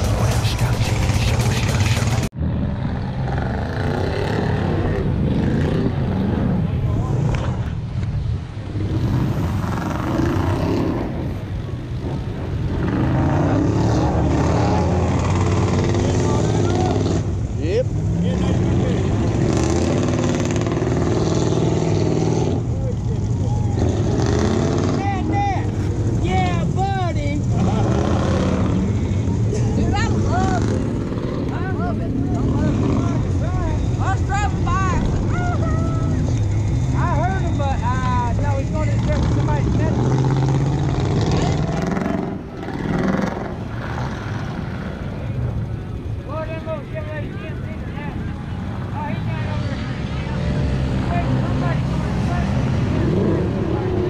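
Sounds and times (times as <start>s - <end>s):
atv engines revving: 0.0s - 54.0s.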